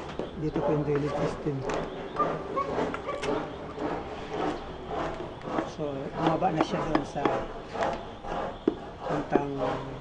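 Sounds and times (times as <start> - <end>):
dog high-pitched calls: 2.2 - 3.3.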